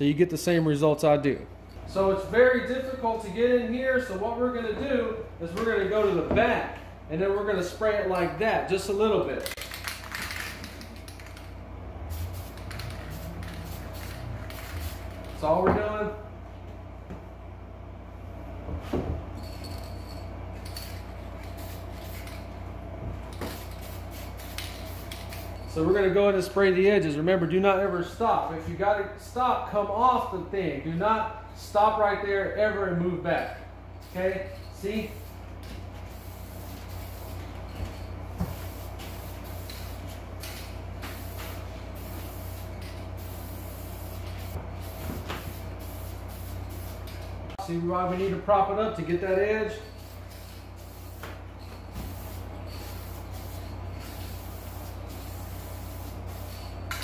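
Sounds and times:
steady low hum: 0:00.0 - 0:57.0
aerosol spray can hissing: 0:12.1 - 0:15.2.

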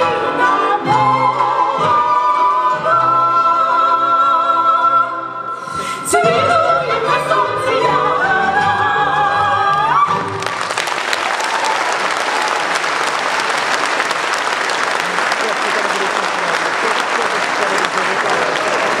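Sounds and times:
women singing with folk band: 0:05.9 - 0:10.2
audience applause: 0:10.2 - 0:19.0.

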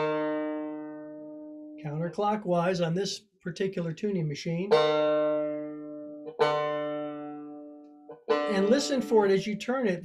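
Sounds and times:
banjo string ringing: 0:00.0 - 0:02.9, 0:04.6 - 0:10.0.

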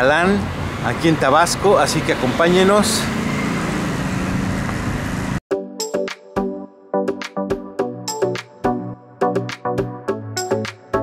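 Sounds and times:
road traffic noise: 0:00.0 - 0:05.4
vehicle engine running: 0:00.0 - 0:05.4.

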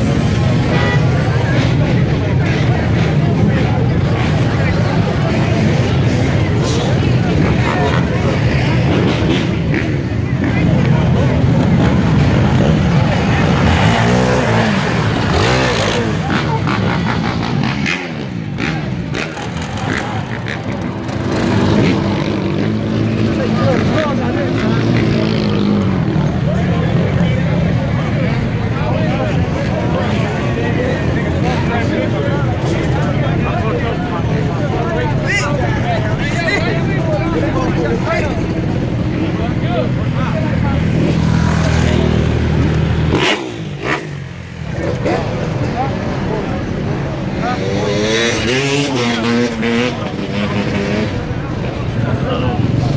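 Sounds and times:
crowd voices: 0:00.0 - 0:52.9
motorcycle engines revving: 0:00.0 - 0:52.9.

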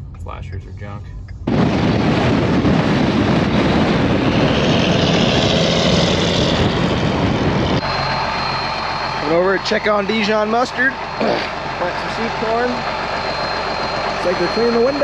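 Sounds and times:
engine hum: 0:00.0 - 0:15.0
wind rush and road noise: 0:00.8 - 0:13.0.

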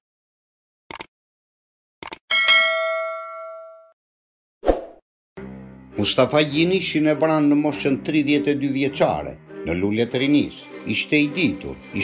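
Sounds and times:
notification bell ding: 0:02.3 - 0:04.0.

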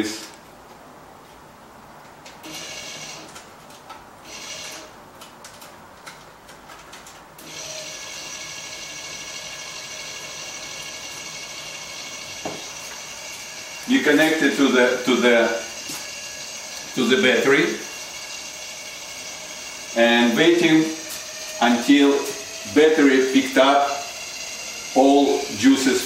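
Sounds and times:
electric thruster motor whine: 0:07.4 - 0:26.0.

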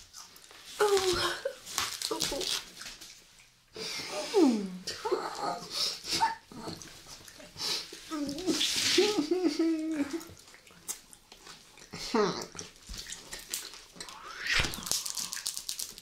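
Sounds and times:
wavering hummed mmm: 0:14.0 - 0:15.1
brief hiss: 0:14.2 - 0:15.1.

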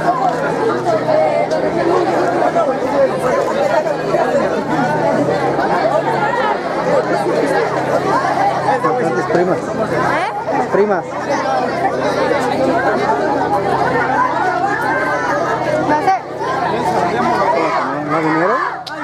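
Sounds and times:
crowd of teenagers chattering: 0:00.0 - 0:19.0.

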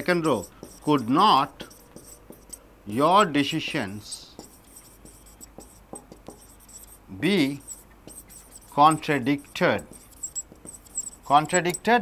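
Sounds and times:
marker pen writing on whiteboard: 0:00.0 - 0:12.0.

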